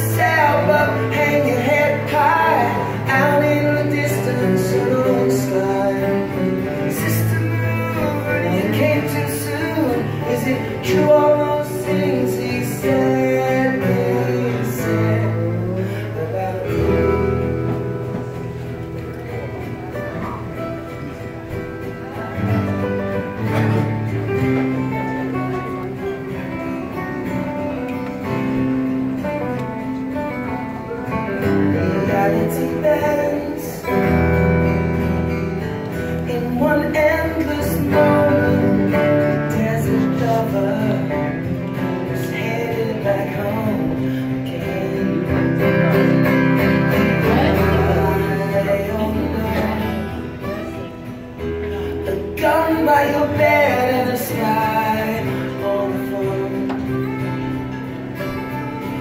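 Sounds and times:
acoustic guitars playing live: 0:00.0 - 0:59.0.

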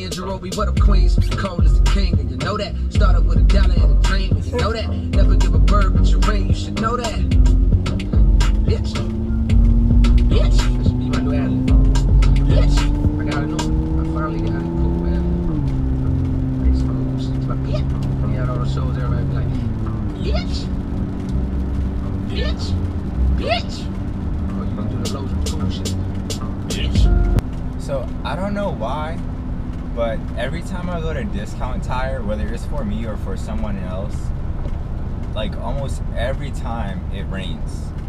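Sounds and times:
car engine accelerating: 0:00.0 - 0:38.0
road noise: 0:00.0 - 0:38.0.

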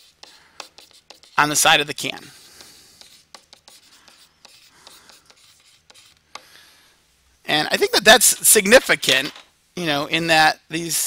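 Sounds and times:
stylus scratching on tablet: 0:00.0 - 0:06.4.

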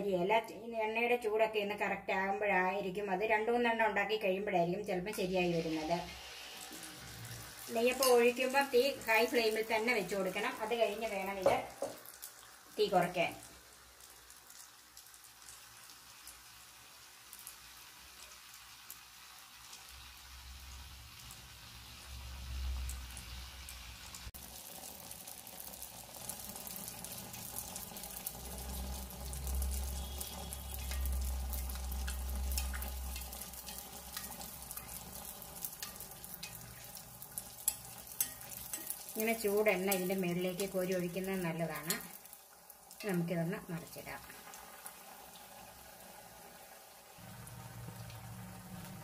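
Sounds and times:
batter sizzling in hot oil: 0:00.0 - 0:49.0.

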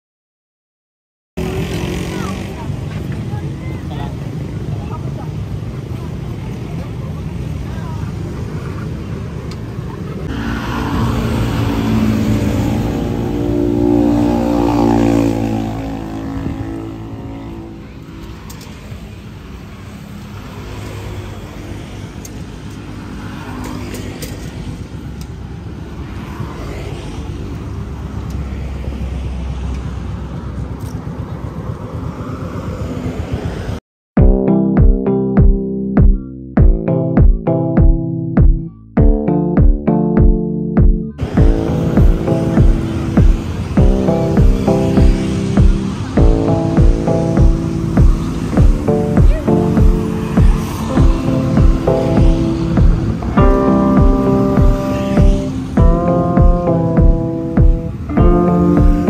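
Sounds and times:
people's voices: 0:01.4 - 0:10.4, 0:41.2 - 0:53.2
steady traffic noise: 0:01.4 - 0:33.8, 0:35.4 - 0:39.0, 0:39.6 - 0:59.0
vehicle engine passing by: 0:01.4 - 0:33.8, 0:41.2 - 0:59.0.

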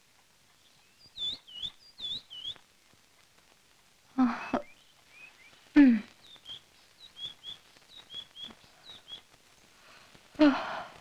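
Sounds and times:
small bird chirping: 0:00.5 - 0:02.6, 0:04.4 - 0:09.7.

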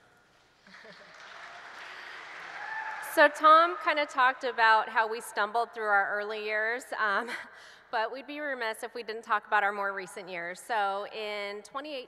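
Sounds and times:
audience applause: 0:00.6 - 0:03.9.

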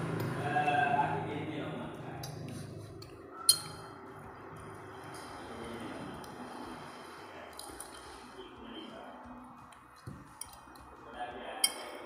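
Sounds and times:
low background murmur: 0:00.0 - 0:12.0
spoon clinking on plate: 0:03.4 - 0:04.0.

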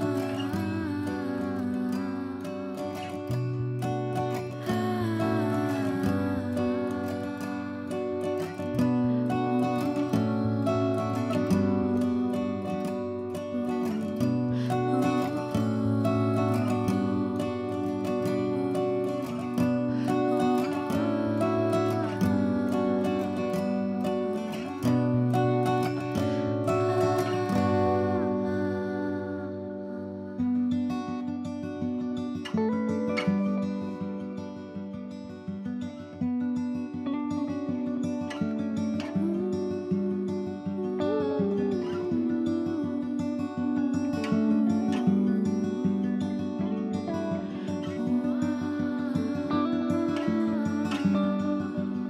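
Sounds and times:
acoustic guitar music: 0:00.0 - 0:52.0.

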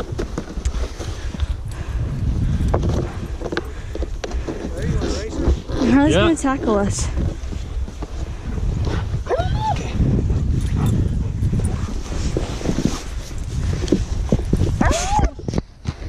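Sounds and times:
wind rumble on microphone: 0:00.0 - 0:16.0.

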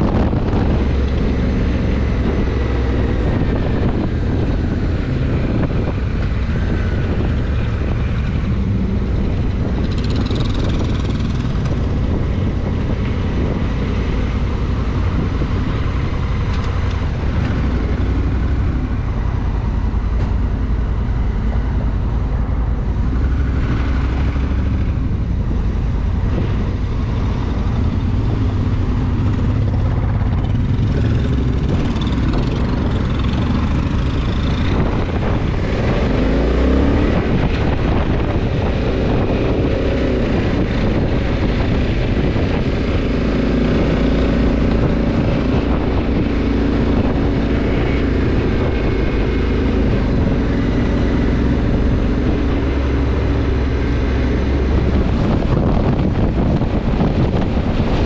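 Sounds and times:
motorcycle engine: 0:00.0 - 0:58.0
road and wind noise: 0:00.0 - 0:58.0.

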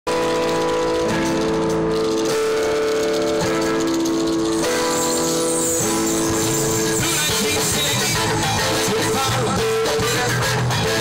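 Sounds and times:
live rock band playing: 0:00.1 - 0:11.0.

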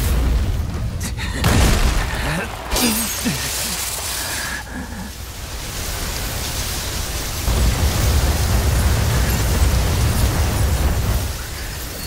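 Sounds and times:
rushing hiss: 0:01.4 - 0:12.0.

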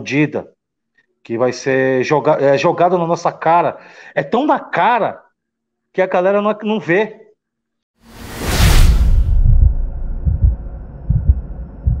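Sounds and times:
loud whoosh: 0:08.0 - 0:12.0
deep low thumps: 0:08.6 - 0:12.0.

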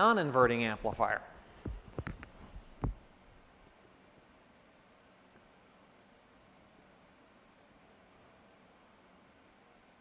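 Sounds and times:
marker scratching on whiteboard: 0:01.6 - 0:10.0.

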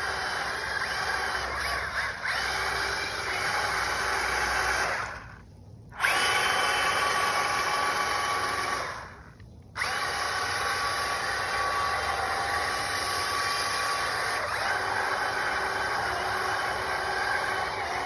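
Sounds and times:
electric motor whining: 0:00.0 - 0:05.4, 0:06.0 - 0:18.0.

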